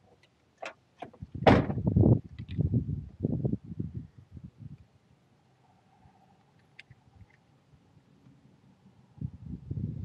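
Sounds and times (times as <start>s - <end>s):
vehicle door shutting: 0.6s - 1.9s.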